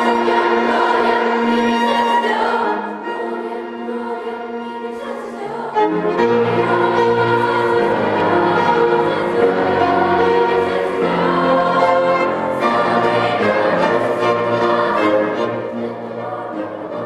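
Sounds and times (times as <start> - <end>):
choir singing sustained lines: 0.0 - 17.0
string orchestra: 0.0 - 17.0.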